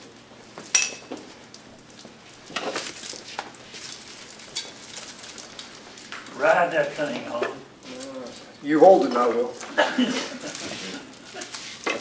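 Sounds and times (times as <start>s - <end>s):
metallic clink: 0.8s - 1.1s.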